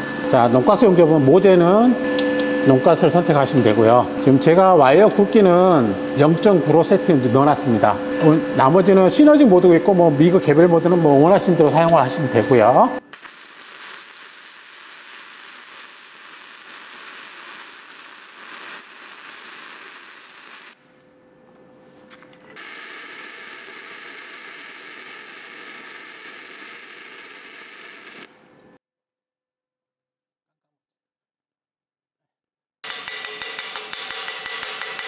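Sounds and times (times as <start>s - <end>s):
welding arc crackling: 13.1s - 20.8s, 22.6s - 28.4s.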